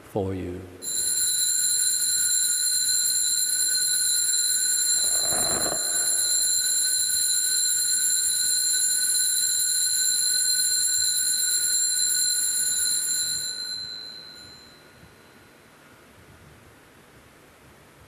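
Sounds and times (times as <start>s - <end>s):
high ringing bells: 0.8s - 15.0s.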